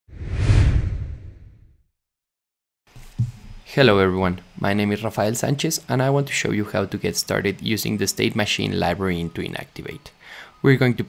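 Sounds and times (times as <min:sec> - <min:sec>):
deep rumble: 0:00.1 - 0:01.7
whoosh: 0:00.1 - 0:01.8.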